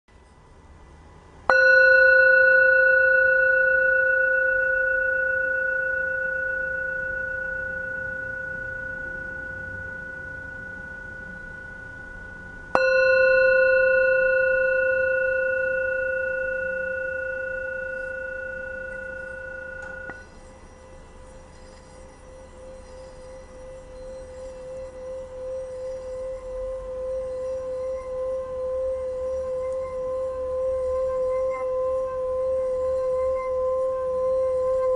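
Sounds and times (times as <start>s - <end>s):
singing bowl struck ringing: 1.5s - 34.9s.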